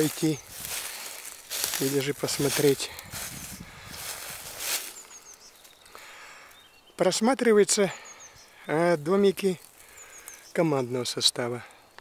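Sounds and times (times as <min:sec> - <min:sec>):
footsteps rustling through dry leaves: 0:00.0 - 0:05.9
high bird chirps: 0:04.5 - 0:07.1, 0:07.8 - 0:10.8.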